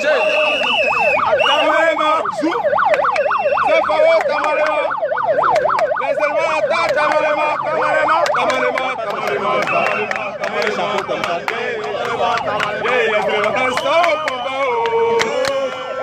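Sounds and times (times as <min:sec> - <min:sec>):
siren yelping: 0:00.0 - 0:16.0
voices of marching crowd: 0:00.0 - 0:16.0.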